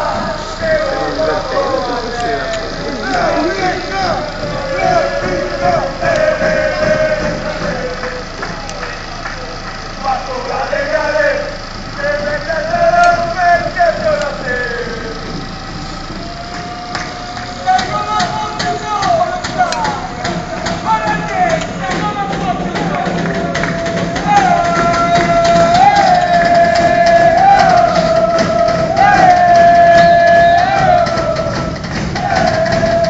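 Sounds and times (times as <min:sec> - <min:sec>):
crowd chanting: 0:00.0 - 0:33.0
sharp taps or claps: 0:02.2 - 0:10.0, 0:16.4 - 0:33.0.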